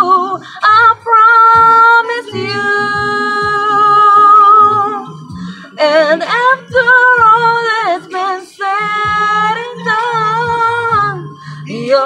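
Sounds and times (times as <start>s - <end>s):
woman singing a slow ballad: 0.0s - 12.0s.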